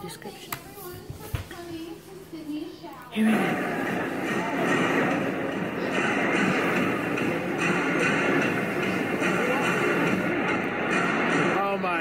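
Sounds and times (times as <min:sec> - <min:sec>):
steady background noise: 0:00.0 - 0:12.0
voices: 0:00.0 - 0:12.0.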